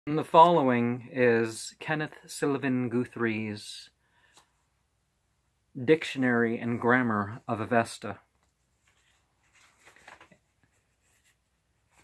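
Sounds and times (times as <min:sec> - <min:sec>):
paper pages rustling: 0:08.4 - 0:12.0.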